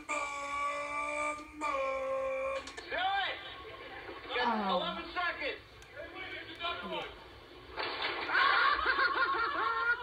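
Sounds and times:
person wailing high note: 0:00.0 - 0:02.7.

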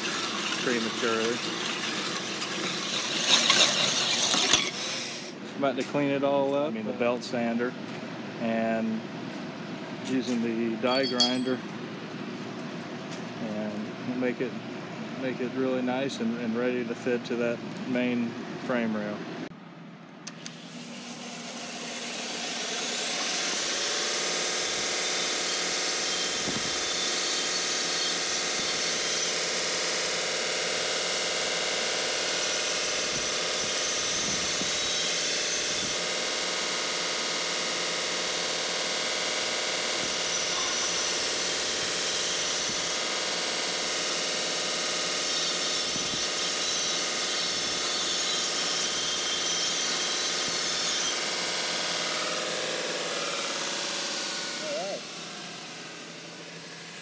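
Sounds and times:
power tool high whine: 0:20.5 - 0:57.0.

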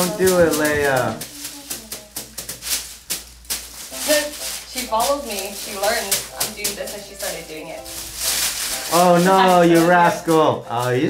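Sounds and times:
paper crinkling: 0:00.0 - 0:11.0.

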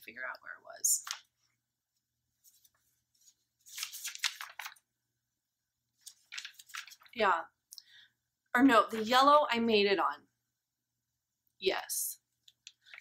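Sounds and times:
rustling and crackling: 0:06.0 - 0:07.2.

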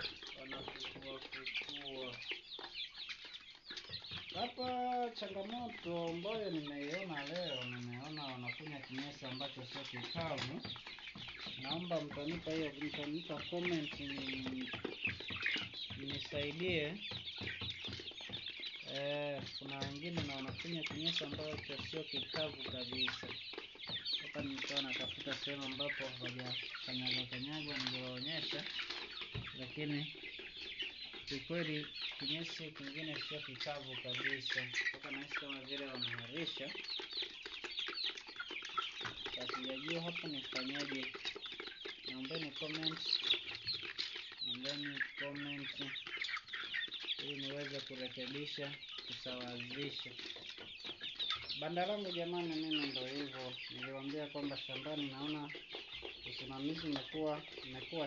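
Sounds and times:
chickens clucking and cheeping: 0:00.0 - 0:58.0.

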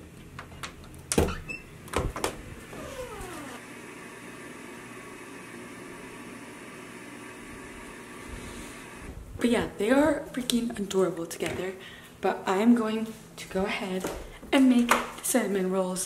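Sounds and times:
room hum: 0:00.0 - 0:16.0
door creak: 0:01.1 - 0:03.6.

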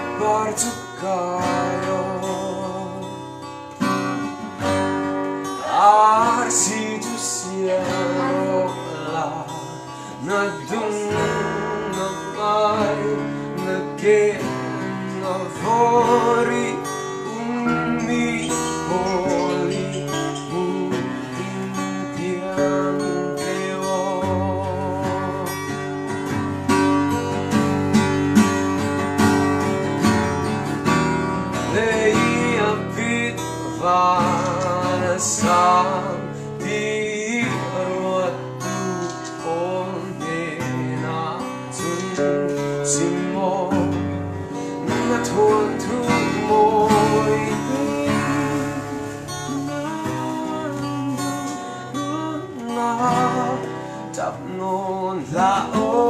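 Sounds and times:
man singing slow song: 0:00.0 - 0:27.8, 0:30.9 - 0:56.0
acoustic guitars strumming chords: 0:00.0 - 0:56.0.

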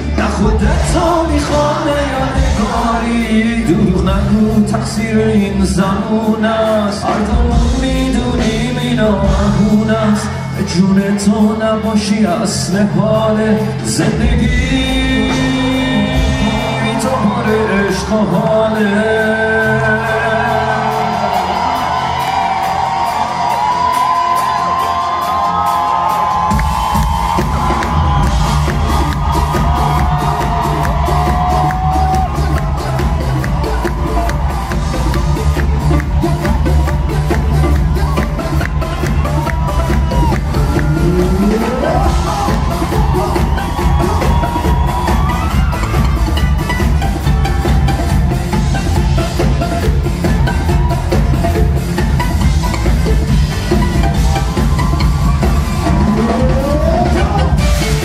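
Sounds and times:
heavy bass and drum beat: 0:00.0 - 0:58.0
live band playing pop music: 0:00.0 - 0:58.0
audience cheering and whooping: 0:14.7 - 0:58.0.

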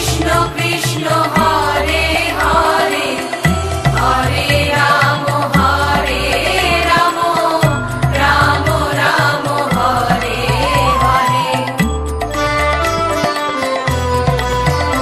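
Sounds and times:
chant-like devotional song: 0:00.0 - 0:13.0
low drum and bass beat: 0:09.7 - 0:13.2.

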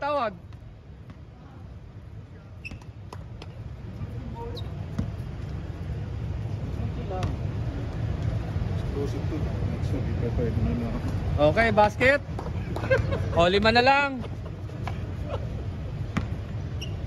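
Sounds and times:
short squeaks: 0:02.6 - 0:03.0, 0:04.3 - 0:04.8, 0:16.7 - 0:17.0.

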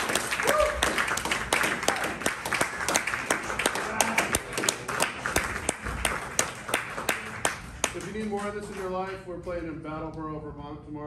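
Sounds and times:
small audience applauding: 0:00.0 - 0:09.2.

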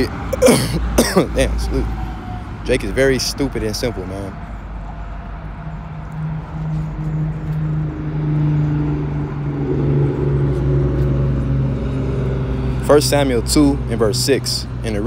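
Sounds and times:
motor vehicle hum: 0:00.0 - 0:15.0.

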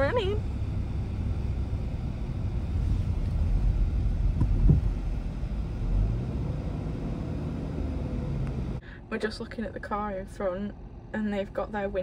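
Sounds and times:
car rumble inside cabin: 0:00.0 - 0:12.0
brief thump: 0:04.4 - 0:04.9.

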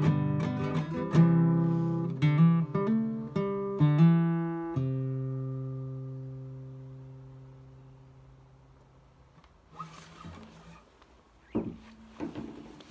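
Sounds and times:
acoustic guitar chord ringing: 0:00.0 - 0:08.7
handling rustle: 0:09.4 - 0:12.9.

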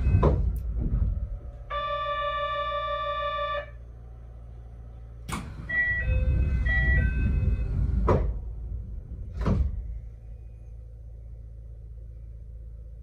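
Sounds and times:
train door clunk: 0:00.0 - 0:01.6, 0:09.2 - 0:09.9
low rumble: 0:00.0 - 0:02.4, 0:03.7 - 0:13.0
door shutting with a thump: 0:09.3 - 0:09.9.

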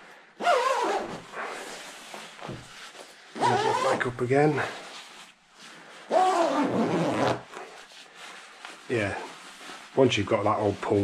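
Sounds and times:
nylon sleeping bag rustling: 0:00.4 - 0:11.0.

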